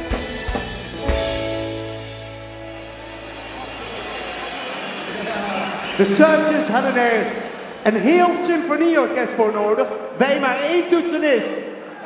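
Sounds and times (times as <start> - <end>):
live band final chord: 0.0 - 7.8
audience applauding and cheering: 1.8 - 8.4.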